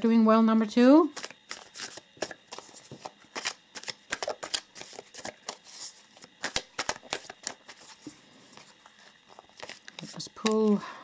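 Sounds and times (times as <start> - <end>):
cards being shuffled: 1.1 - 10.8.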